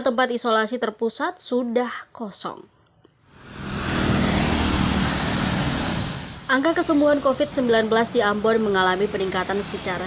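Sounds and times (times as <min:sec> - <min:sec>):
vehicle engine and tyres: 0:03.2 - 0:10.0.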